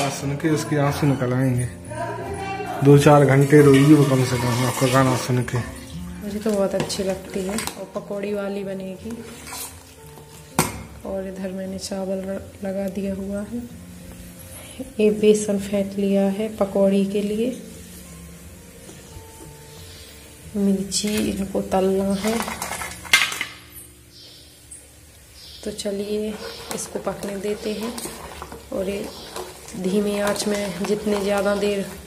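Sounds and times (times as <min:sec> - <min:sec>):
faint background music: 0:00.0 - 0:32.0
metal spoon stirring in steel pot: 0:03.1 - 0:10.8, 0:21.0 - 0:23.6, 0:25.6 - 0:32.0.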